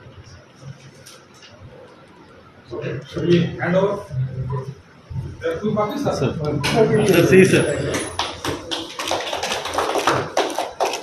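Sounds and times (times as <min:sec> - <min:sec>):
people clapping: 0:07.2 - 0:11.0.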